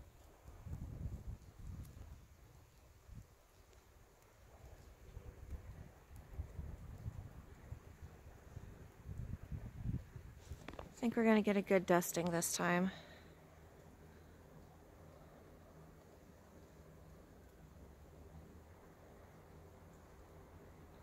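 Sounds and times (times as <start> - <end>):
faint low rumble: 0.0 - 21.0.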